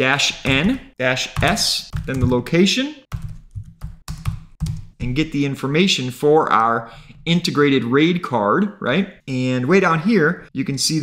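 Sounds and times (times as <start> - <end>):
keyboard keystrokes: 3.1 - 4.9.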